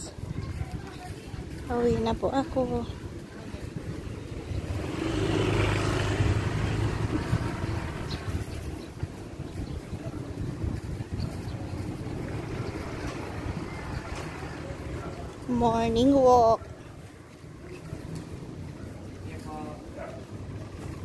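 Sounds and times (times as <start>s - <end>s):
outdoor background noise: 0.0s - 21.0s
vehicle engine humming: 1.7s - 21.0s.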